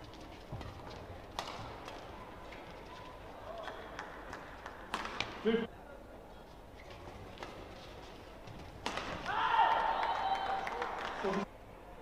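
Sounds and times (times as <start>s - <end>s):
racket hitting shuttlecock: 1.4s - 2.0s, 3.6s - 5.4s, 8.6s - 9.5s.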